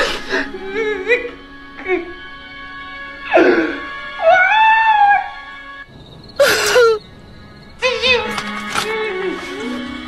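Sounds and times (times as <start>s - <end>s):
soft background music: 0.0s - 5.9s
woman wailing sob: 6.4s - 7.0s.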